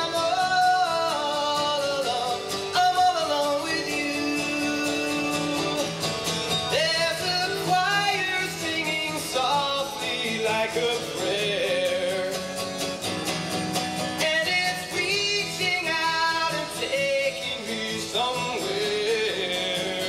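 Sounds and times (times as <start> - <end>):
man singing into microphone: 0.0 - 6.0, 6.6 - 12.8, 14.1 - 20.0
strummed acoustic guitar: 0.0 - 20.0.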